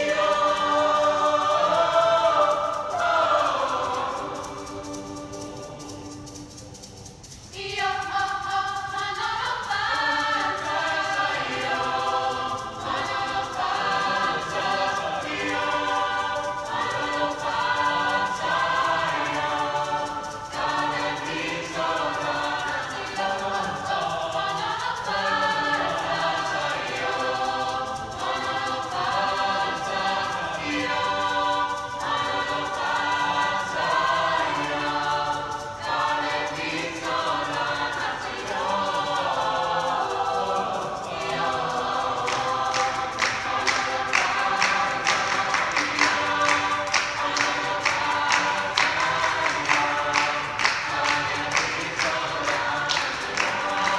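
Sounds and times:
choir singing a cappella: 0.0s - 53.9s.

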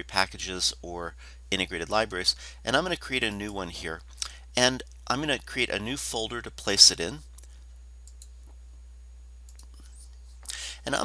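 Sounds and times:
computer mouse clicks: 7.4s - 8.6s, 9.5s - 9.9s.

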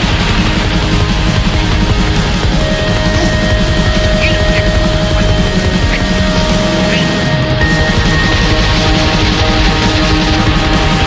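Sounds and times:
distorted guitars: 0.0s - 11.0s
fast dense drumming: 0.0s - 11.0s
steady held tone: 0.0s - 11.0s.

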